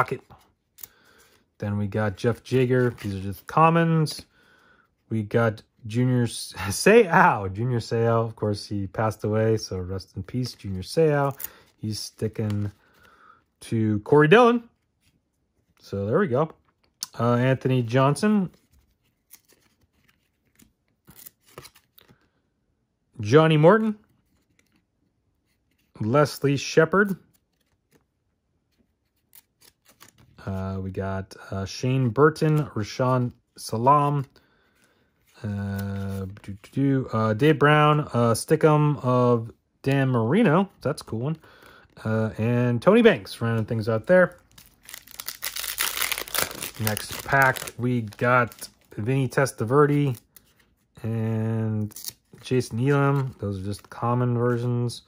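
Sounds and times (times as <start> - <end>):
cards flipped through by hand: 2.2 - 3.6, 10.2 - 13.1, 18.4 - 22.3, 24.1 - 26.0, 27.0 - 30.4, 34.1 - 36.7, 43.5 - 50.9, 51.8 - 54.6
wrapper crinkling and tearing: 44.2 - 48.9.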